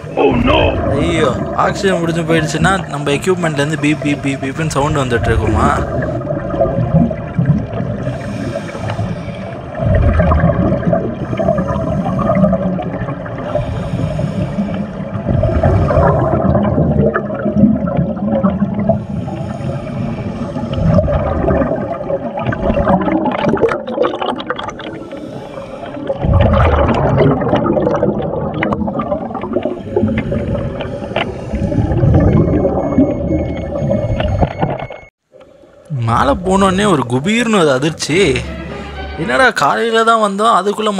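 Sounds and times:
underwater regulator gurgling: 0.0 - 37.2
exhaled bubbles rushing: 0.0 - 37.4.

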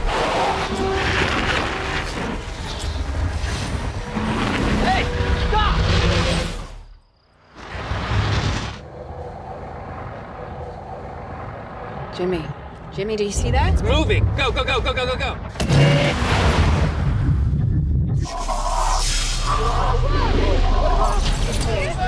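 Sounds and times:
people shouting: 19.5 - 22.0.

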